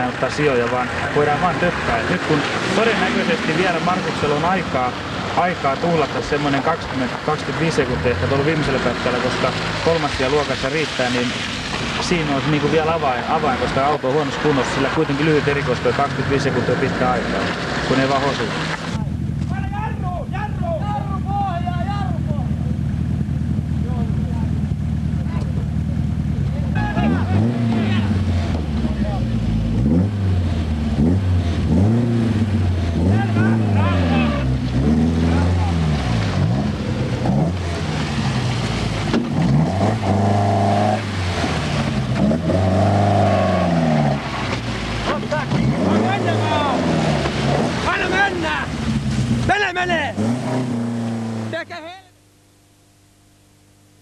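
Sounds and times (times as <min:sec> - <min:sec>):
car engine revving: 0:00.0 - 0:51.8.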